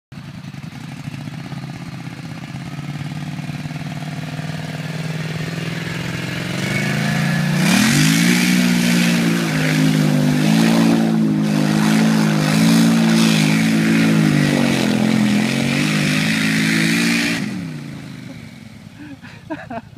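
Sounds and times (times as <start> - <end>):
atv engine revving: 0.2 - 19.9.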